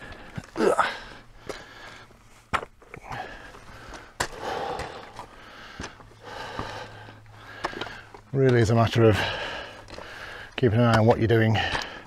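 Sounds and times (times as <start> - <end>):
heavy breathing: 0.0 - 2.4, 3.0 - 8.3, 9.0 - 10.6, 11.4 - 12.0
boots scraping on loose rock: 0.1 - 12.0.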